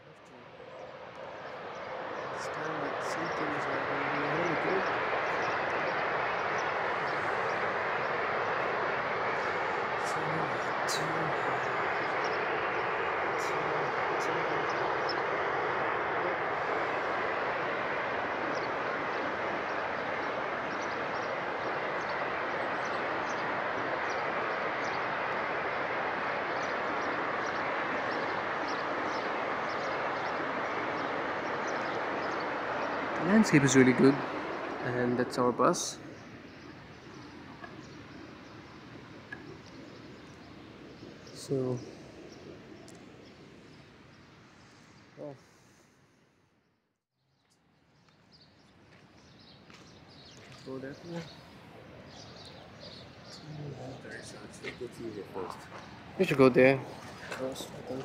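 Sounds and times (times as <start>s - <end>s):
waterfall rushing: 1.0s - 39.3s.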